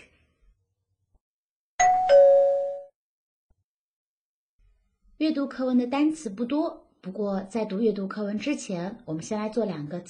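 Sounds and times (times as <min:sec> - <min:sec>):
two-note ding-dong chime: 0:01.8 - 0:02.9.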